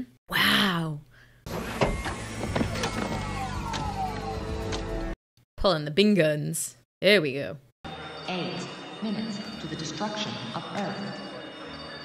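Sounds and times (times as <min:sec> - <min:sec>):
motorised mechanism whirring: 0:01.5 - 0:04.8.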